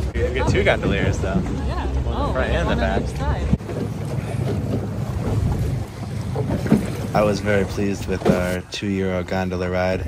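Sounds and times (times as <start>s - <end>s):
choppy water against boat hull: 0.0s - 10.0s
wind buffeting microphone: 0.0s - 10.0s.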